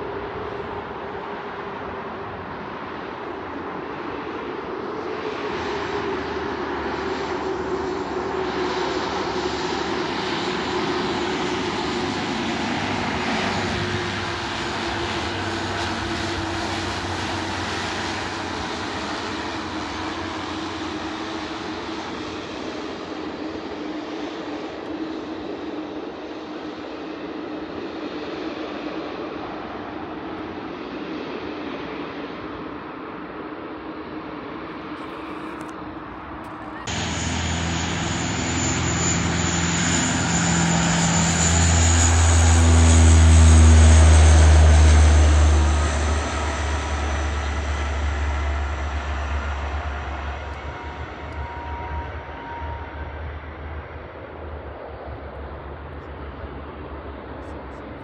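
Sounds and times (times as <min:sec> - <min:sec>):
turboprop engines droning: 0:00.0 - 0:58.0.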